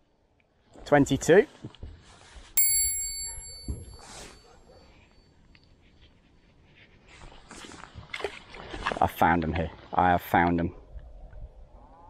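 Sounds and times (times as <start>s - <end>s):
metallic ding: 2.6s - 4.4s.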